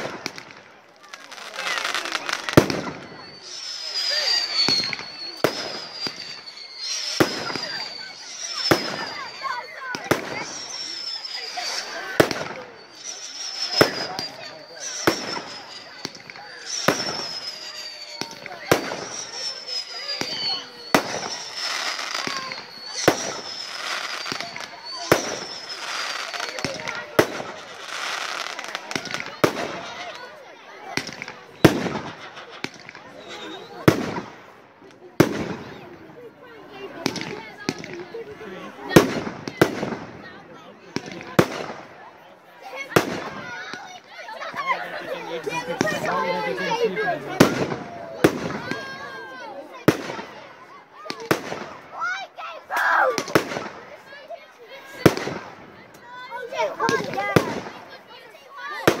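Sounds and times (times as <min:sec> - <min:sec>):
firework whistle: 0:00.0 - 0:54.2, 0:54.8 - 0:59.0
fireworks bursting: 0:00.0 - 0:59.0.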